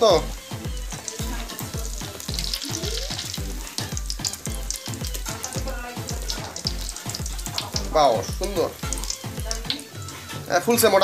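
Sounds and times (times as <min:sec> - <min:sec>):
low steady beat: 0:00.0 - 0:09.8
oil sizzling: 0:00.0 - 0:11.0.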